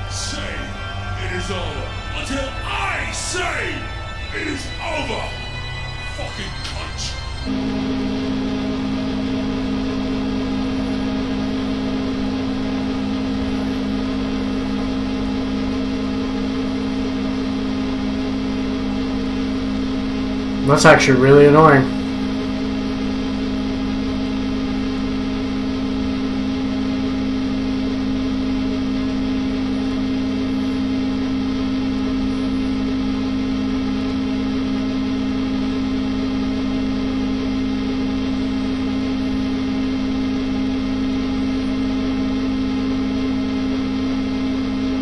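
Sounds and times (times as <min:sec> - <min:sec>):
low electric drone: 0:00.0 - 0:45.0.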